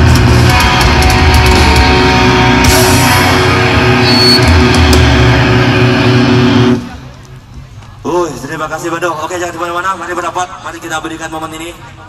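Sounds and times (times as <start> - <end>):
distorted guitars sustained chord: 0.0 - 7.2.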